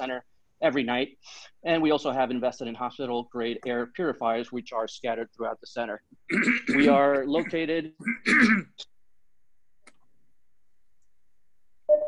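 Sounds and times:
person clearing throat: 6.3 - 8.9.

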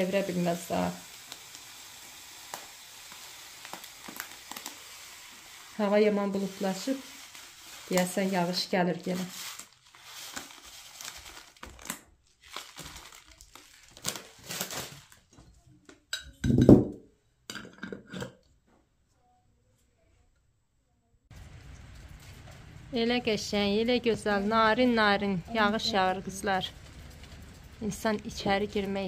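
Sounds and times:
light rain: 0.0 - 15.2, 21.3 - 29.0
foil packet crinkling: 1.0 - 15.3.

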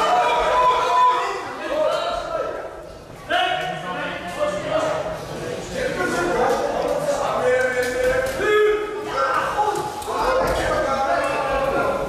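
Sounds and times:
people shouting in echoing hall: 0.0 - 3.8, 8.0 - 12.0.

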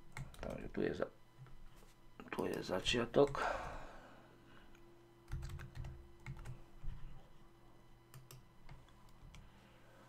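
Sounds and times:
computer keyboard typing: 0.1 - 0.6, 5.2 - 6.6, 8.1 - 9.4.

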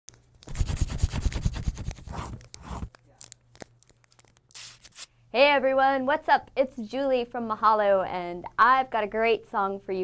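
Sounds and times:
pencil scribbling on paper: 0.5 - 2.9.

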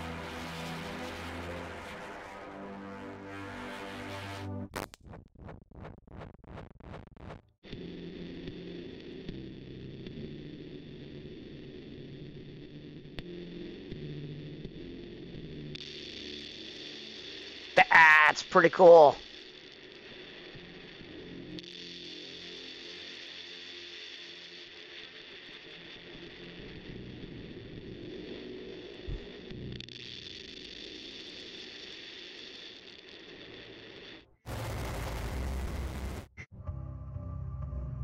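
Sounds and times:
high whine: 0.0 - 4.6, 15.1 - 31.9, 32.6 - 36.5
distorted synthesizer: 17.8 - 19.2, 34.5 - 36.4.

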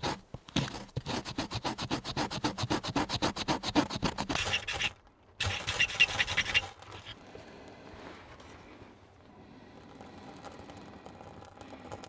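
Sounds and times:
metal blade scraping wood: 0.0 - 7.2.

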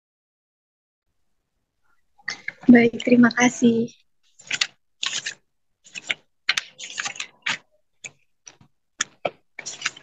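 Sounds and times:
computer keyboard typing: 4.4 - 10.0.

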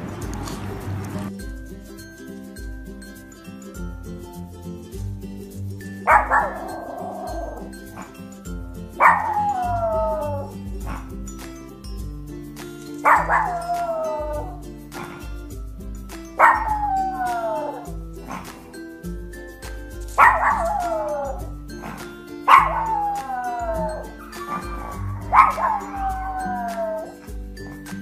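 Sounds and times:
background music: 0.0 - 28.0
dog howling barks: 6.1 - 8.1, 9.0 - 11.1, 13.0 - 15.2, 16.4 - 18.5, 20.2 - 27.2.

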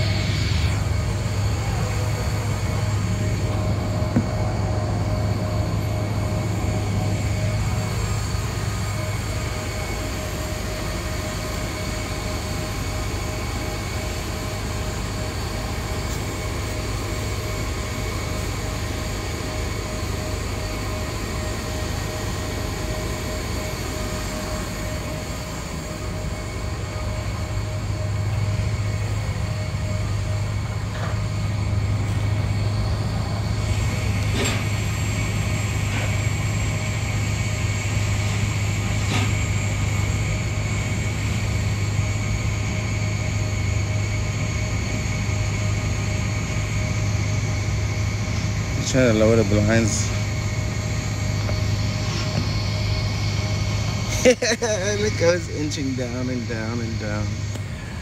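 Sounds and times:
airport ramp machinery drone: 0.0 - 58.0
high steady whines: 0.0 - 58.0
low hum: 0.0 - 58.0.

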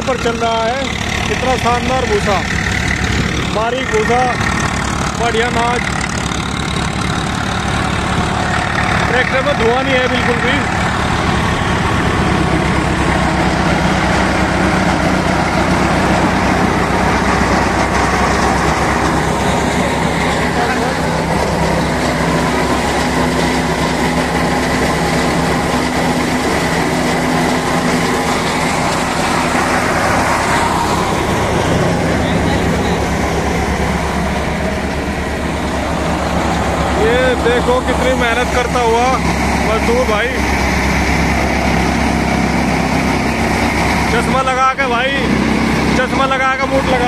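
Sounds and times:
diesel tractor engine running: 0.0 - 47.0
thresher mechanical noise: 0.0 - 47.0.

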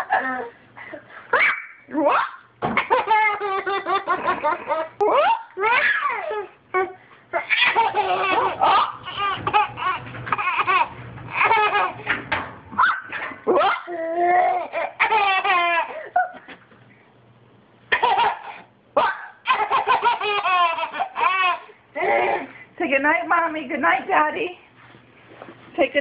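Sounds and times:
baby laughing: 1.3 - 12.1, 12.8 - 16.6, 17.9 - 22.5.

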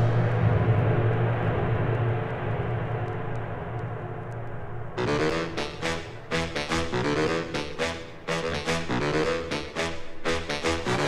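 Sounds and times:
low rumbling drone with hiss: 0.0 - 11.0.

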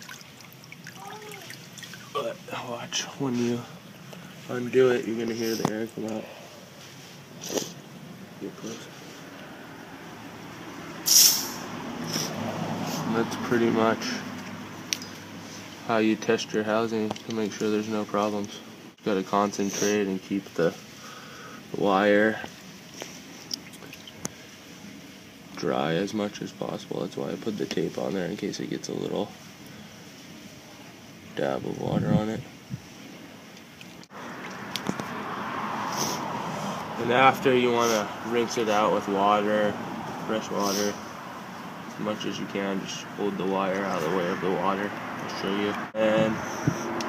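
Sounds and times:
pressurised gas hissing: 5.1 - 9.4, 11.0 - 13.2, 19.5 - 23.4, 40.2 - 41.8.

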